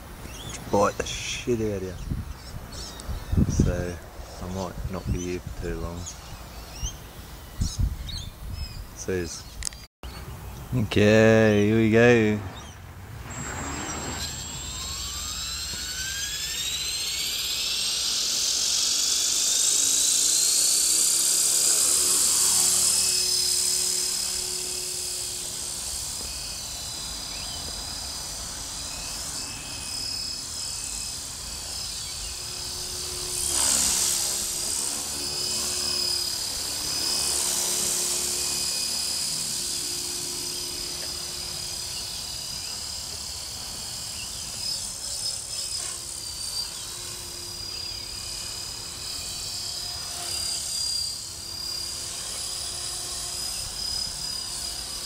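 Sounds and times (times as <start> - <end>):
rc helicopter rotor whine: 0.0 - 55.0.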